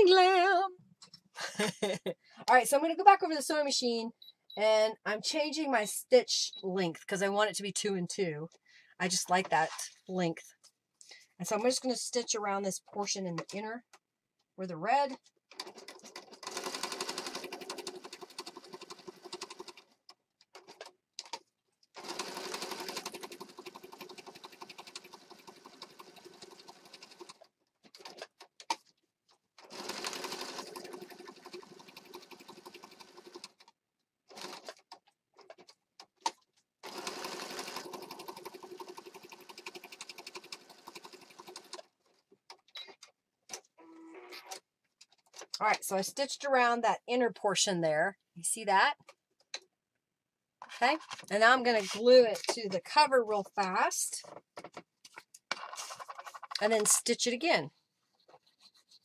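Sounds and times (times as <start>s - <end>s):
electric sewing machine stitching: 15.6s - 19.9s, 22.0s - 27.4s, 29.6s - 33.7s, 34.3s - 34.8s, 36.8s - 41.9s.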